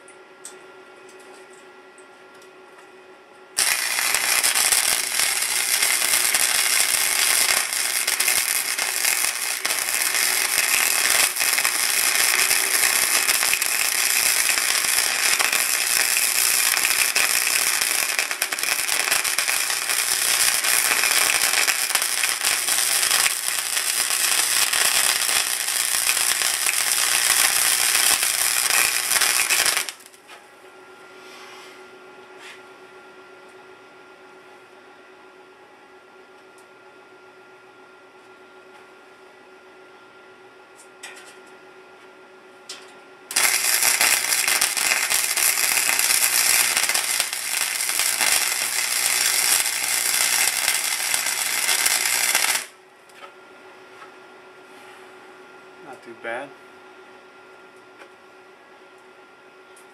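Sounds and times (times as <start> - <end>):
faint hum: 0.0 - 59.9
welding arc crackling: 3.6 - 30.2, 43.3 - 52.8.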